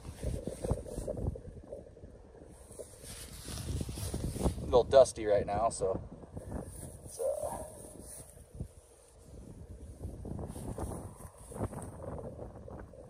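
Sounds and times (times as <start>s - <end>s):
wind noise on microphone: 0.0s - 13.0s.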